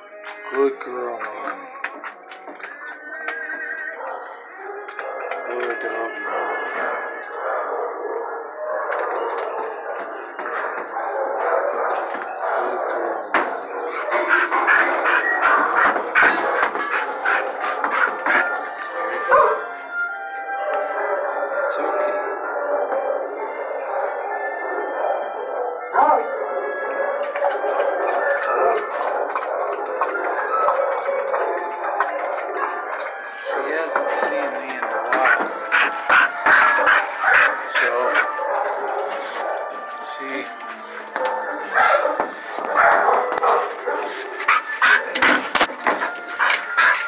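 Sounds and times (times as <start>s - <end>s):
dog barking: 6.2s - 19.7s, 25.1s - 39.8s, 41.2s - 47.0s.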